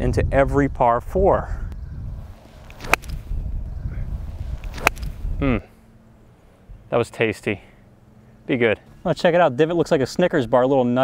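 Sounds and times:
low steady rumble: 0.0s - 11.0s
golf club striking ball: 2.3s - 3.7s, 4.5s - 5.4s.

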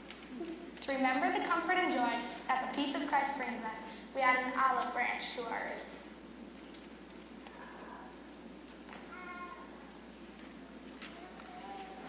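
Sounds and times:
child calling out: 9.1s - 9.8s, 11.1s - 12.0s.

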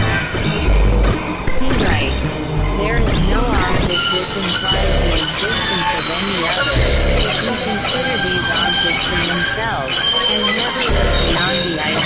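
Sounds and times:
low rumbles: 0.0s - 3.9s
high synthesizer tones: 0.0s - 12.0s
sliding synthesizer pitches: 0.0s - 12.0s.

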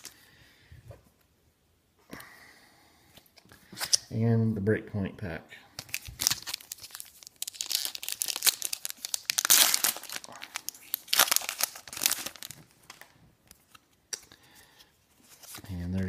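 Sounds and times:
foil wrapper crinkling: 5.8s - 13.1s.

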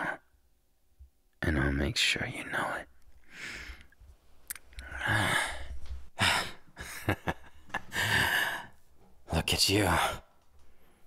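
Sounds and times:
man laughing breathily: 5.0s - 8.8s.

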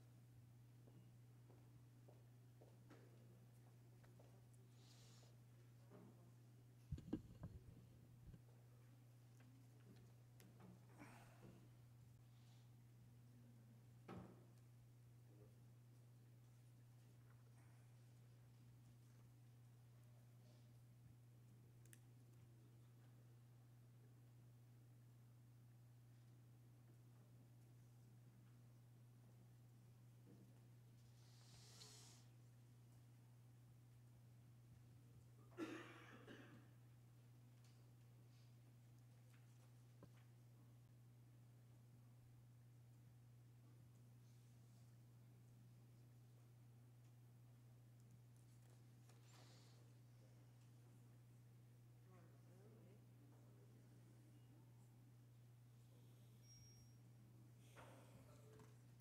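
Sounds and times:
low electrical hum: 0.0s - 59.0s.

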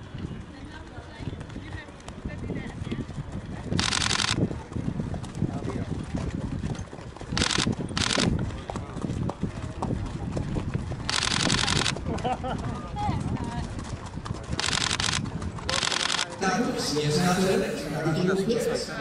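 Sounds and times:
horse hoofbeats on sand: 0.0s - 16.8s
people talking: 0.5s - 3.0s, 15.7s - 19.0s.

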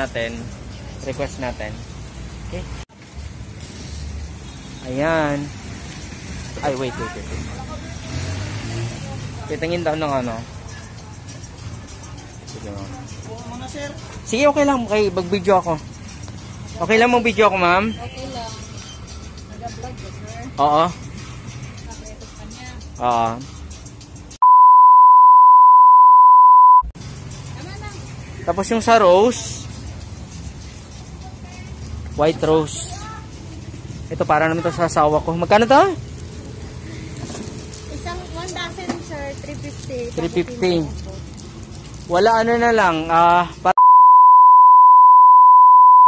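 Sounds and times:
market background noise: 0.0s - 24.4s, 27.0s - 43.8s
censor beep: 24.4s - 26.9s, 43.8s - 46.0s.

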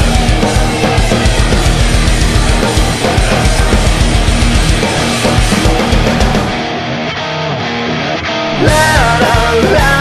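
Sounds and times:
rock music with guitars and drums: 0.0s - 10.0s.

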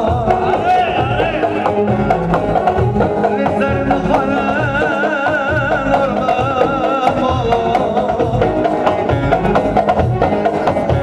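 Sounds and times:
folk dance melody: 0.0s - 11.0s
steady drum beat: 0.0s - 11.0s.

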